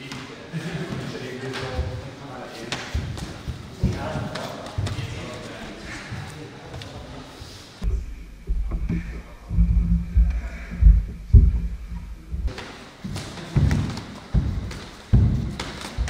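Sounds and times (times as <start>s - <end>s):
bare feet on wooden floor: 3.0s - 16.0s.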